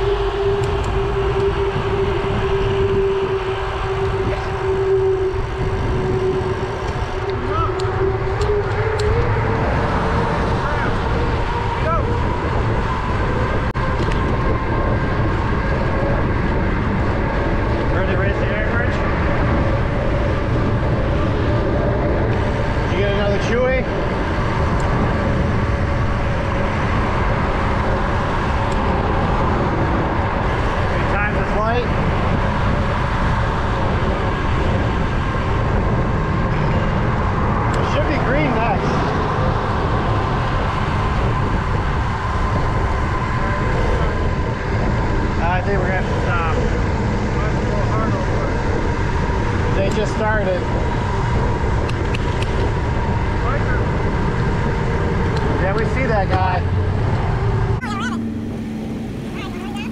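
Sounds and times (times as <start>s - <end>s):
cars passing: 0.0s - 59.9s
steady hum: 0.0s - 59.9s
wind on microphone: 0.0s - 59.9s.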